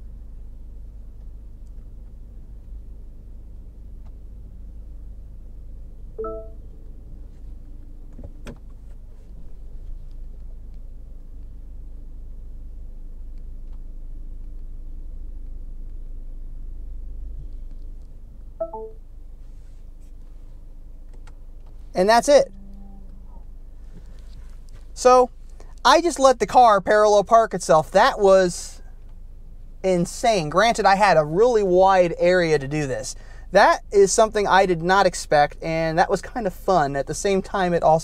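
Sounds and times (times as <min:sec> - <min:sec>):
car engine and road rumble: 0:00.0 - 0:38.0
electronic dashboard chimes: 0:06.2 - 0:06.6, 0:18.6 - 0:19.0.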